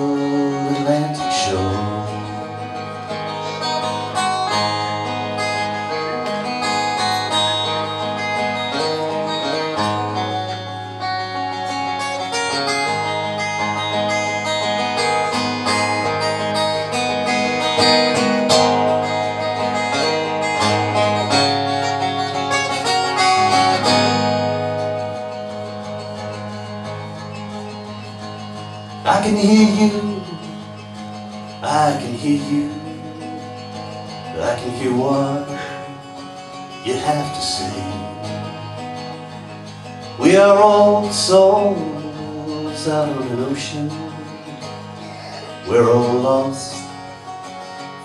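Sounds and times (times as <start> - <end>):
acoustic guitar playing: 0.0 - 48.0.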